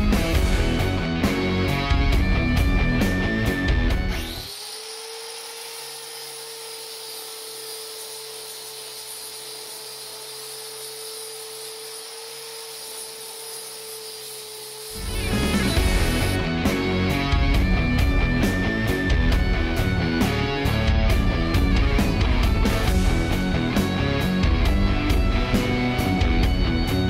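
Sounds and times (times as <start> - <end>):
rock music with guitar: 0.0 - 4.4, 15.0 - 27.0
angle grinder grinding metal: 0.0 - 27.0.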